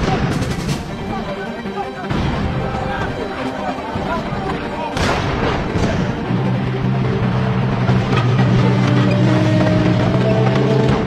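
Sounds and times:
artillery and gunfire: 0.0s - 1.2s, 4.9s - 6.5s
voices: 0.0s - 11.0s
heavy blast: 5.0s - 6.7s.

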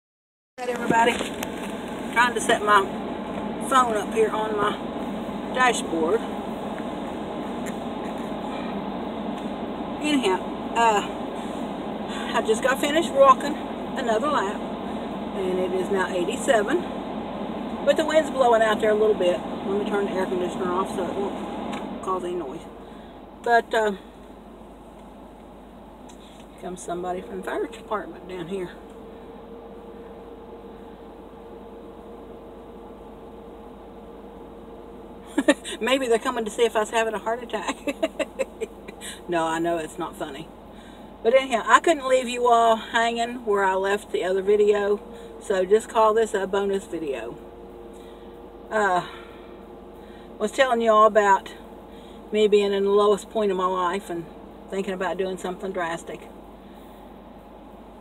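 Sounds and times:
woman speaking: 0.6s - 1.4s, 2.1s - 2.9s, 3.6s - 4.8s, 5.5s - 6.3s, 10.0s - 11.2s, 12.1s - 14.6s, 15.4s - 16.9s, 17.8s - 21.4s, 22.0s - 22.7s, 23.4s - 24.1s, 26.6s - 28.8s, 35.3s - 40.5s, 41.2s - 47.4s, 48.7s - 49.2s, 50.4s - 51.6s, 52.3s - 56.3s
car engine idling: 0.6s - 58.0s
air conditioning blower rushing: 0.7s - 41.3s.

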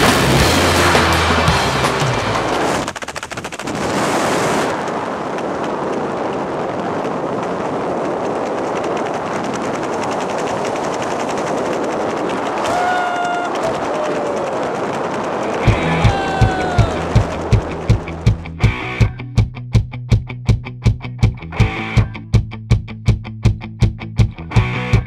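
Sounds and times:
wind rushing over microphone: 2.1s - 19.2s
fabric flapping: 2.5s - 18.4s.

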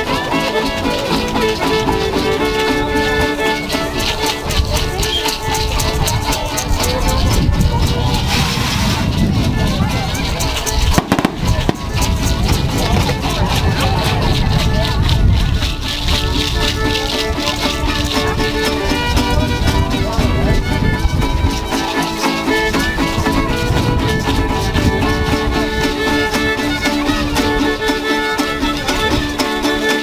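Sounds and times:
crowd voices: 0.0s - 30.0s
folk dance music: 0.0s - 30.0s
rattles shaking rhythmically: 0.0s - 30.0s.

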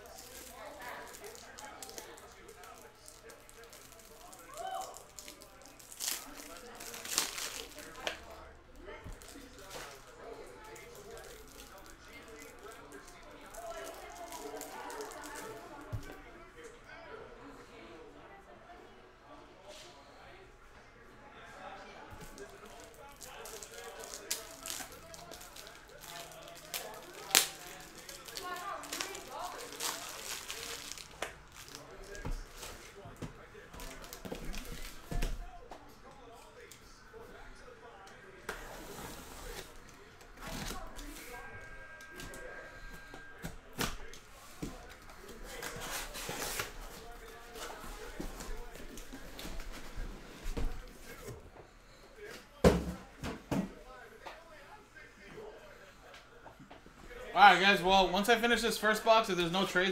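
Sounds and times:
packing tape ripping: 0.0s - 8.2s, 22.3s - 32.8s.

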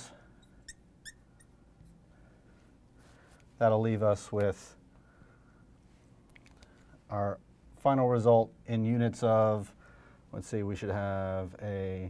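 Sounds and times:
marker squeaking on glass: 0.3s - 2.0s.

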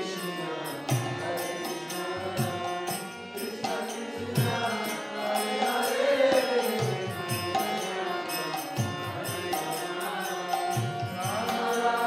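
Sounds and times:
harmonium drone: 0.0s - 12.0s.

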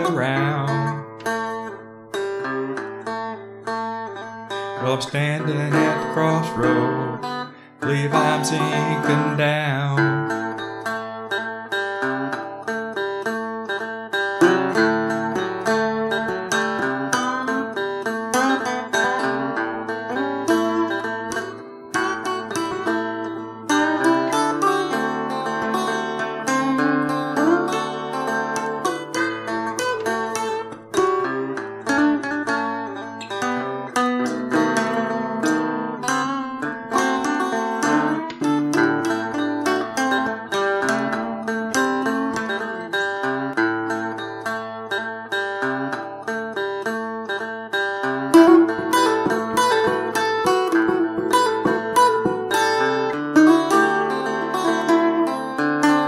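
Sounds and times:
blues guitar playing: 0.0s - 56.0s.

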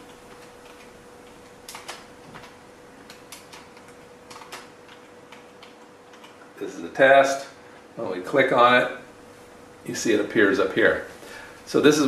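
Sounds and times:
typing on computer keyboard: 0.3s - 6.4s.

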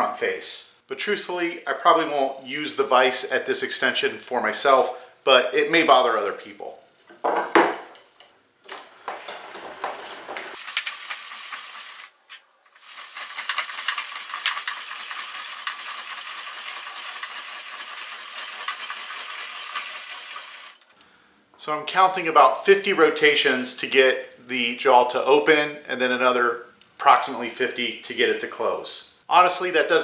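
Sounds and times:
vise screws and chain rattling: 9.2s - 20.8s.

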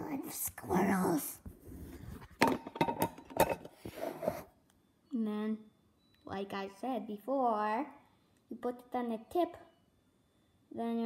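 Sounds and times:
phone rubbing: 3.8s - 4.6s.

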